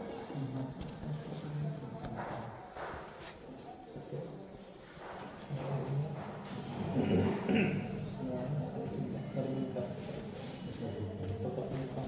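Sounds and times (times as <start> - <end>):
faint indistinct speech: 0.0 - 12.0.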